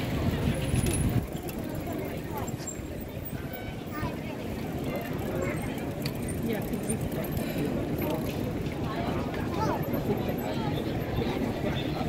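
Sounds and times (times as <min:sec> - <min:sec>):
people chattering and calling: 0:00.0 - 0:12.0.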